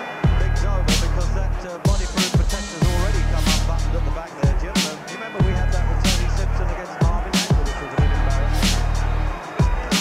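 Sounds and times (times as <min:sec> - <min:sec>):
deep bass line: 0:00.3 - 0:01.6, 0:02.8 - 0:04.6, 0:05.4 - 0:06.8, 0:08.0 - 0:09.4.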